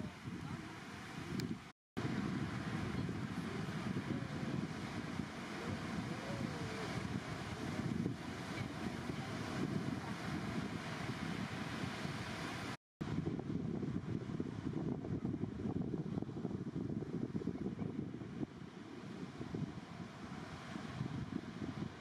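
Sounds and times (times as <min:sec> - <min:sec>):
wind buffeting microphone: 0:00.0 - 0:22.0
ocean surf breaking: 0:02.0 - 0:12.8.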